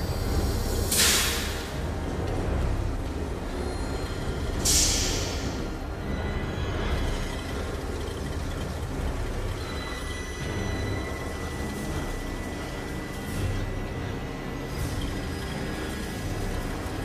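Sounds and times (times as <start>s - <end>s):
low tense film score: 0.0s - 17.0s
steady rain falling: 0.0s - 17.0s.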